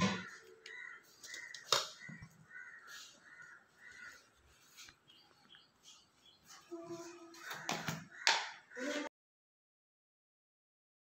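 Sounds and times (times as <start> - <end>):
crow cawing: 0.0 - 4.3, 7.3 - 9.0.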